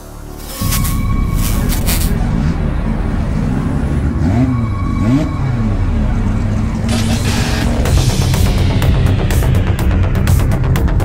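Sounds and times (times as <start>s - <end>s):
engine revs blipped: 0.4s - 8.9s.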